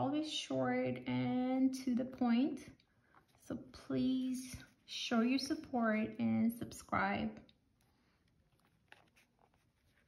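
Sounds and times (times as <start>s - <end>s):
wallet being handled: 7.7s - 10.0s.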